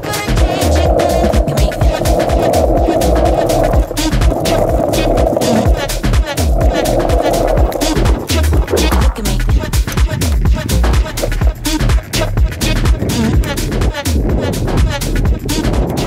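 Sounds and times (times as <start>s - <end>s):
electronic music with steady beat: 0.0s - 16.0s.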